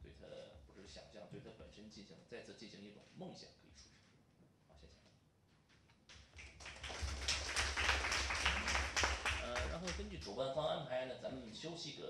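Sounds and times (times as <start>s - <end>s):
applause: 6.3s - 10.2s.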